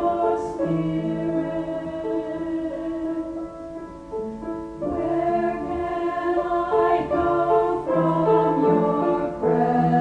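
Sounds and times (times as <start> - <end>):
choir singing slow sacred song: 0.0 - 3.8, 4.6 - 10.0.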